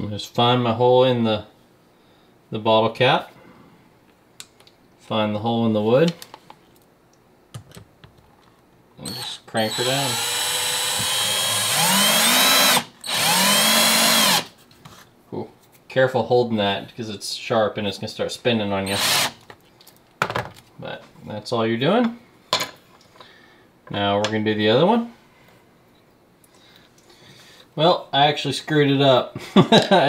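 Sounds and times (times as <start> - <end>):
power drill motor whine: 9.0 - 14.5, 18.9 - 19.3.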